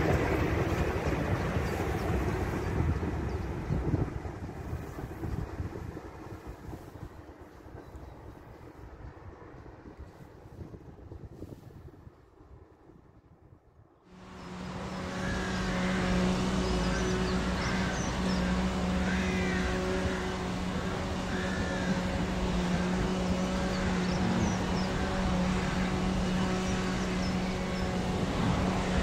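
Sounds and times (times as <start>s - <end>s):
low rumbling hum: 14.1s - 29.0s
birds chirping and singing: 14.2s - 29.0s.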